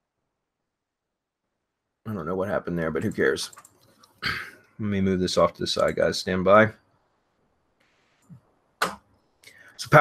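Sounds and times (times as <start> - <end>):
man speaking: 2.1 - 3.6, 4.2 - 6.8, 8.8 - 10.0.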